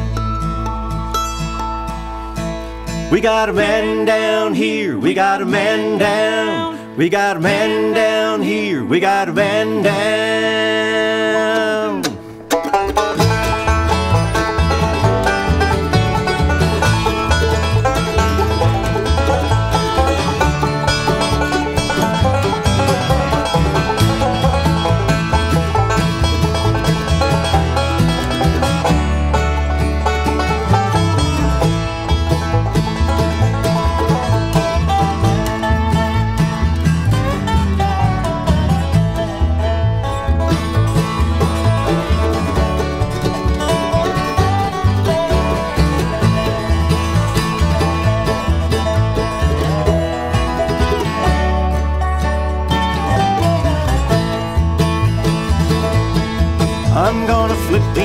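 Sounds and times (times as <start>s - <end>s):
acoustic guitar: 0.0s - 58.0s
banjo: 0.0s - 58.0s
fiddle: 0.0s - 58.0s
mandolin: 0.0s - 58.0s
resonator guitar: 0.0s - 58.0s
upright bass: 0.0s - 58.0s.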